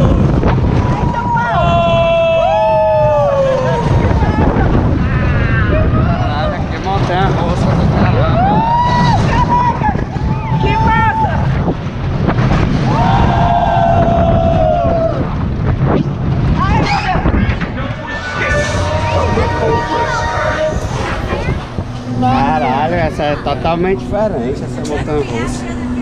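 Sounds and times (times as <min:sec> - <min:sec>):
riders screaming and whooping: 0:00.0 - 0:06.6, 0:08.0 - 0:11.8, 0:12.6 - 0:21.8
roller coaster rumbling on track: 0:00.0 - 0:26.0
wind buffeting microphone: 0:00.0 - 0:26.0.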